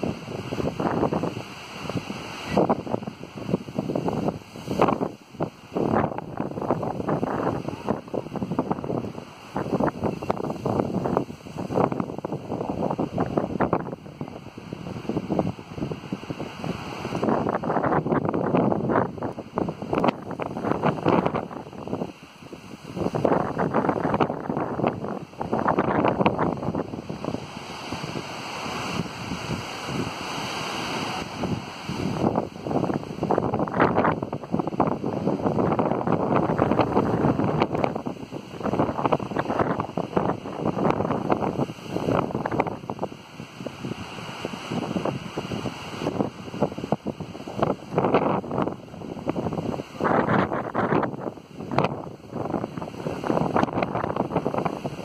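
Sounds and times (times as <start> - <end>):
gusty wind buffeting microphone: 0.0 - 55.0.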